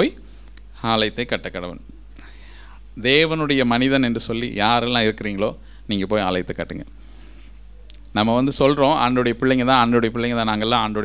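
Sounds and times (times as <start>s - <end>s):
faint soft hiss: 0.0s - 11.0s
man speaking: 3.0s - 6.9s, 8.1s - 11.0s.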